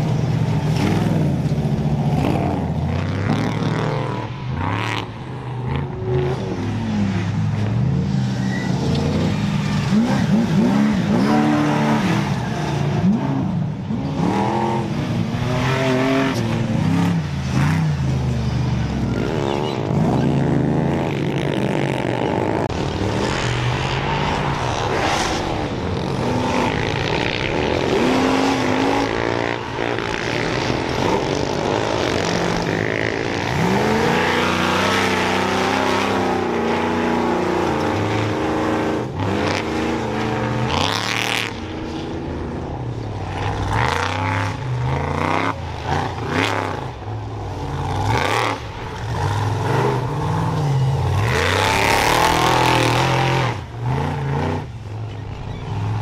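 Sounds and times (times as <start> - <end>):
truck engines revving hard: 0.0 - 56.0.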